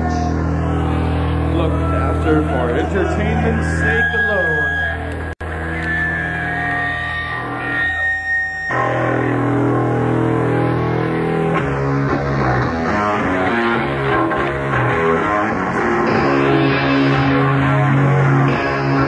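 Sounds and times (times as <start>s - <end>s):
droning bass: 0.0s - 19.0s
guitar feedback tones: 0.0s - 19.0s
heavy bass notes: 0.0s - 19.0s.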